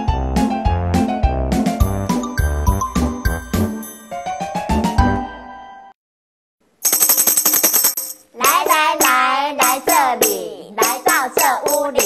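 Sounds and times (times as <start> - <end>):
tambourine jingle roll: 6.8 - 12.0.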